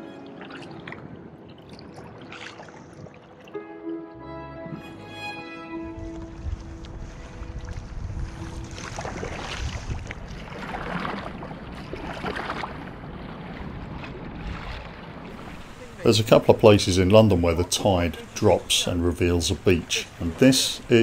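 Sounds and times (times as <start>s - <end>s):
background music: 0.0s - 2.4s, 3.4s - 9.5s
water splashing from paddle strokes: 0.0s - 3.6s, 6.4s - 16.4s
wind rumbling on microphone: 5.8s - 16.4s.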